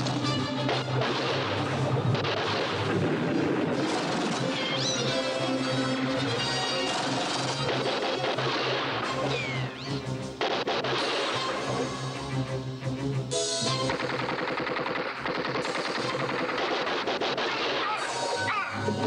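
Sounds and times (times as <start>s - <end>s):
rapid automatic gunfire: 0.0s - 4.9s, 6.6s - 9.3s, 10.4s - 11.5s, 13.9s - 18.1s
action film music score: 0.0s - 19.0s.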